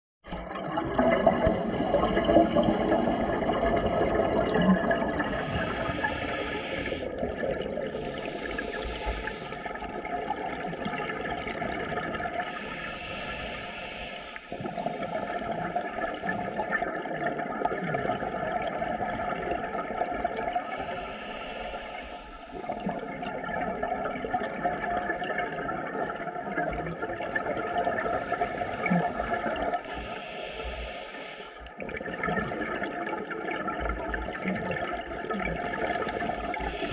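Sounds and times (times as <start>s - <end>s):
bubbling regulator exhalation: 0.3s - 36.9s
hissing regulator inhalations: 1.4s - 3.6s, 5.3s - 7.3s, 7.9s - 9.8s, 12.4s - 16.8s, 20.6s - 22.8s, 28.1s - 31.7s, 36.0s - 36.9s.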